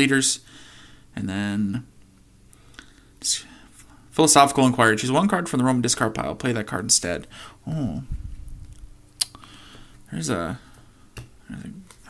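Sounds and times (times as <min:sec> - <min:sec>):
whispered breath hiss: 0:02.8 - 0:04.0, 0:07.2 - 0:08.3.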